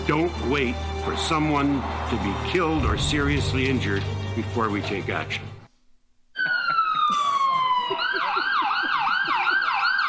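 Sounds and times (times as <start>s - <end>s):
emergency vehicle siren wailing: 6.4s - 10.0s.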